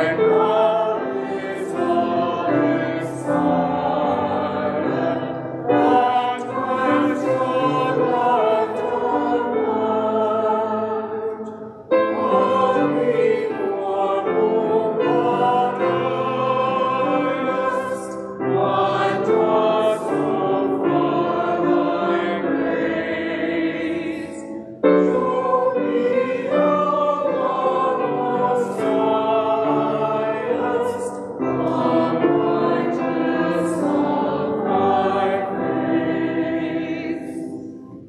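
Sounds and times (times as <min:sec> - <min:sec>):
grand piano accompaniment: 0:00.0 - 0:38.0
group of voices singing a hymn: 0:00.0 - 0:38.0.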